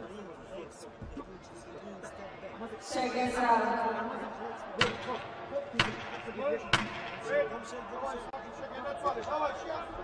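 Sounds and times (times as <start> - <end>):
sharp knocks: 5.8 - 7.2.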